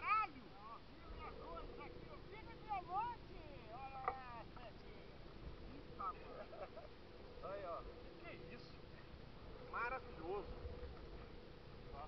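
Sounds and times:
faint steady hum: 0:00.0 - 0:12.0
indistinct voices talking: 0:00.0 - 0:12.0.

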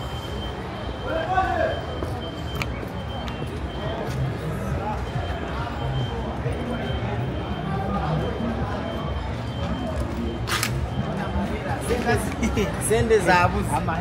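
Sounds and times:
babble of passing voices: 0:00.0 - 0:14.0.

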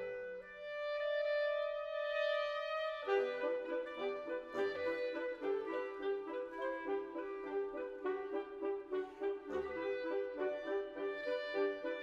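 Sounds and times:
woodwind quintet playing: 0:00.0 - 0:12.0.

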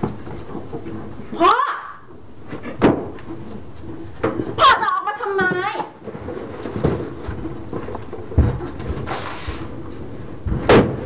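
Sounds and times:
rustling: 0:02.4 - 0:11.0.

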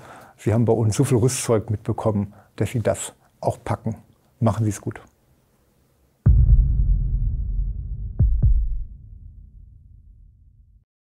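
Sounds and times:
deep thumps with rumbling tail: 0:06.3 - 0:10.7.

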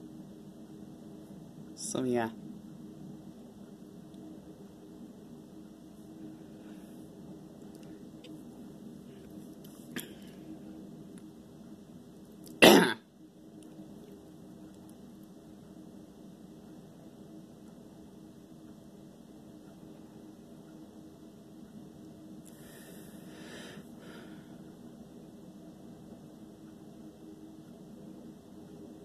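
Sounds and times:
steady low hum: 0:00.0 - 0:29.0
person coughing: 0:10.0 - 0:10.2, 0:12.6 - 0:13.0.

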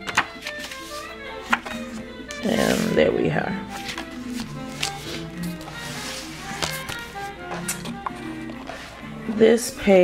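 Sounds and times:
soft background music: 0:00.0 - 0:10.0
pages being handled: 0:00.1 - 0:03.0, 0:03.6 - 0:09.0.

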